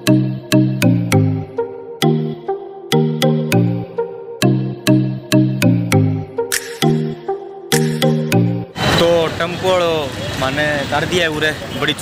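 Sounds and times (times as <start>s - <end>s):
street traffic noise: 8.7s - 12.0s.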